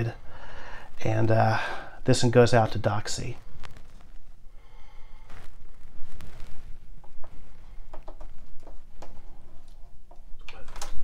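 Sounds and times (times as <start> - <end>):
steady low hum: 0.0 - 10.5.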